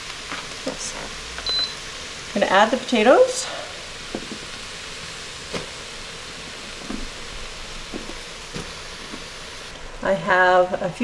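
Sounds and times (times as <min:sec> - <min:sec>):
leeks sizzling in a pot: 0:00.0 - 0:11.0.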